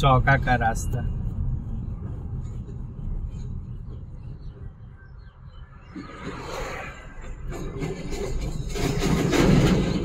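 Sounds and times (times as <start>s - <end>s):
car driving heard from inside: 0.0s - 7.2s.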